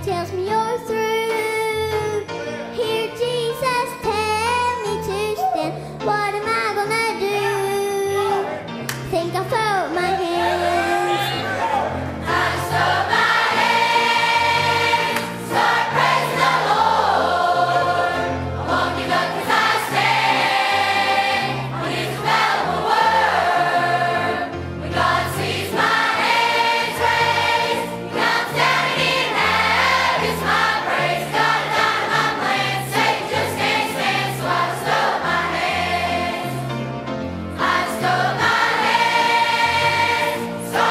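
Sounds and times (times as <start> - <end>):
instrumental accompaniment with bass: 0.0 - 40.9
youth choir singing gospel: 10.1 - 36.9, 37.5 - 40.9.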